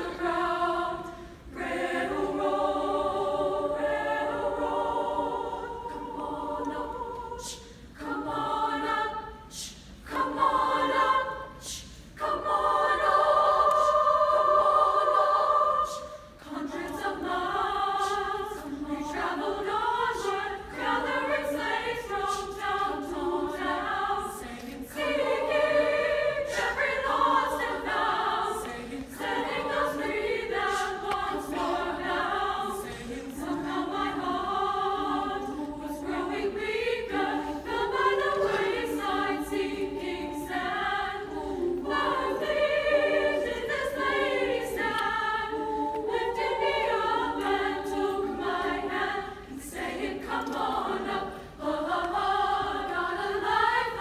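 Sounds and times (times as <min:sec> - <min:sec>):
women's choir singing: 0:00.0 - 0:54.0.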